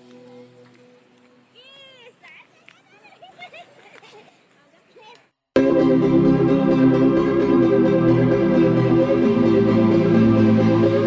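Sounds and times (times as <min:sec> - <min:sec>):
held music notes: 0:05.6 - 0:11.0.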